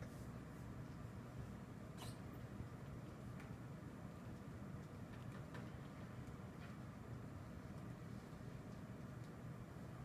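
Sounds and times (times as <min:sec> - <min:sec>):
room hum: 0:00.0 - 0:10.0
brief high squeak: 0:02.0 - 0:02.2.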